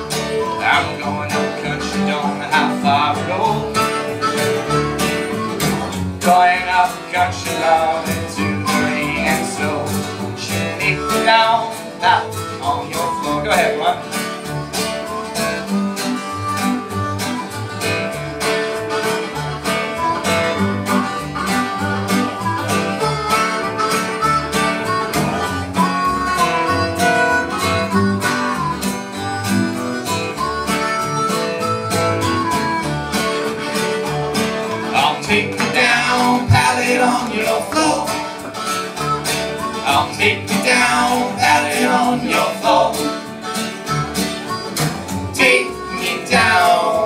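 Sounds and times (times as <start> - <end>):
harmonica: 0.0 - 47.0
plucked upright bass: 0.0 - 47.0
strummed acoustic guitars: 0.0 - 47.0.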